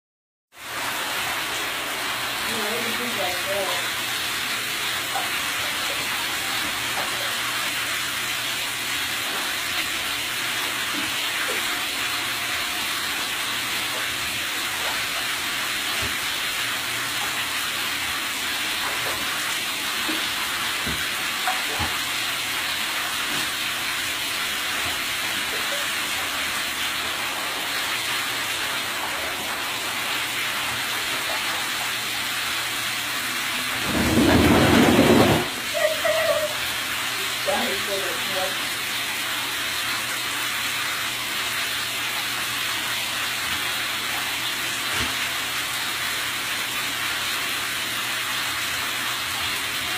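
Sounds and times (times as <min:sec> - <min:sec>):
bath tap running into water: 0:00.6 - 0:49.9.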